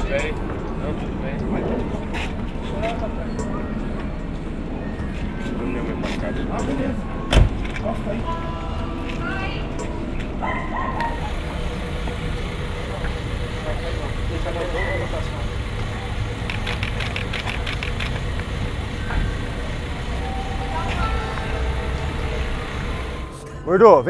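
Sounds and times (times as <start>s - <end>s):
low rumble of idling engines: 0.0s - 23.7s
quick run of clicks: 15.7s - 18.5s.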